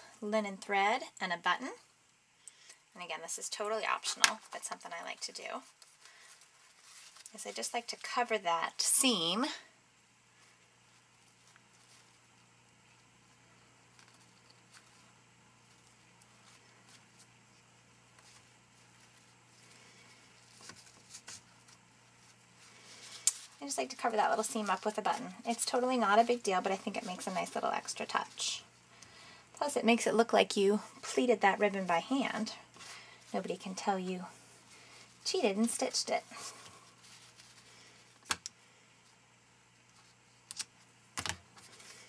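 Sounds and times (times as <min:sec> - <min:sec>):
low steady hum: 0:00.0 - 0:42.0.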